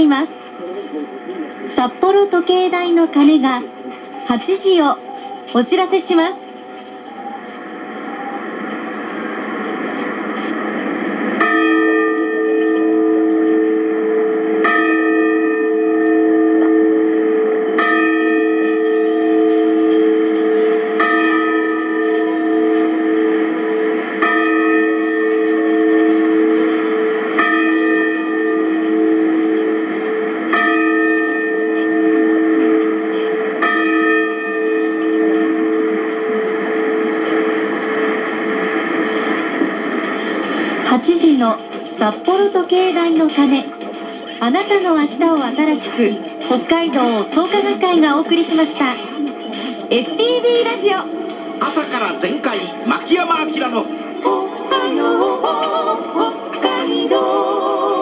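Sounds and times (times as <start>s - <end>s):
clock tower bell striking: 1.8s - 8.7s, 10.1s - 54.8s.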